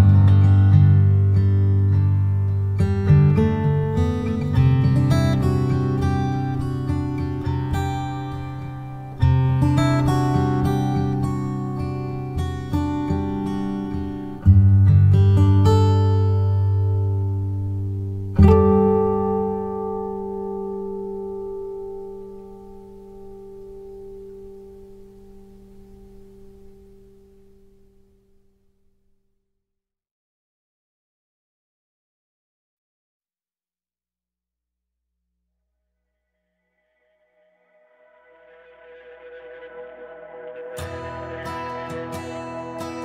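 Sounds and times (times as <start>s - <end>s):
acoustic guitar chords strummed: 0.0s - 28.4s, 38.1s - 43.0s.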